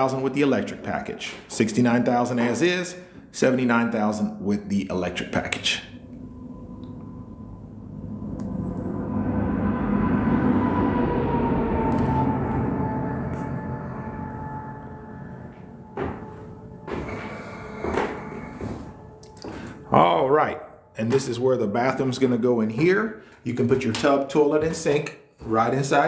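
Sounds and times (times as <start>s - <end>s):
low rumbling noise: 0.0s - 23.9s
faint tone falling in pitch: 5.2s - 17.2s.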